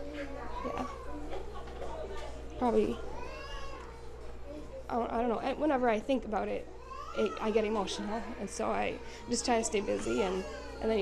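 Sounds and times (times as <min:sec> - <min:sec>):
woman speaking: 0:00.6 - 0:03.1, 0:04.9 - 0:11.0.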